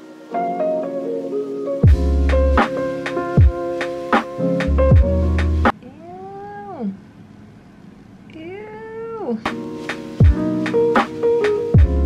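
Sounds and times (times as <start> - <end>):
background music: 0.0 - 5.8, 9.5 - 12.0.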